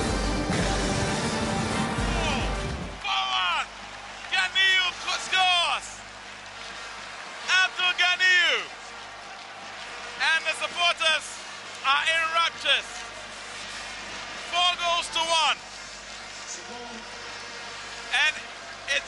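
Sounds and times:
loud dense noise: 0.0s - 19.0s.

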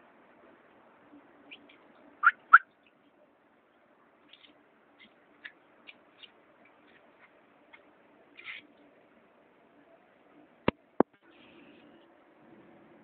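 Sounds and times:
terns calling: 1.5s - 2.9s.

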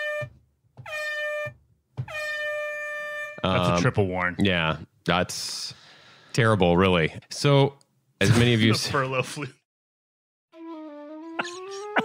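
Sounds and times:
air horn blasts: 0.0s - 3.5s.

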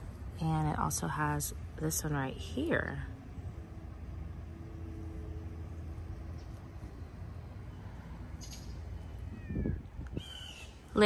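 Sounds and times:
low outdoor rumble: 0.0s - 11.0s
cat meowing: 9.2s - 10.2s.

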